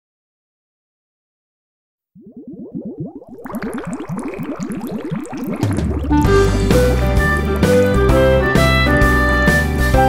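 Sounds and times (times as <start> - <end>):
bubbling water bloops: 2.1 - 8.8.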